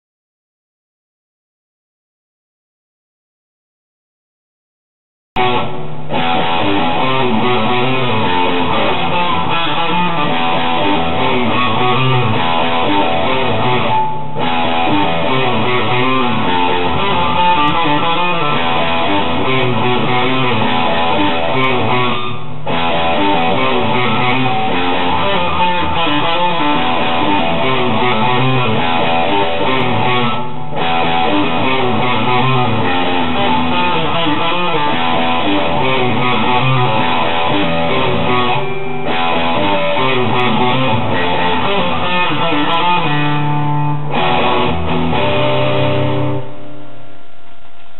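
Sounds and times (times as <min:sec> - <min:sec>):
electric guitar riff: 0:05.4 - 0:47.9.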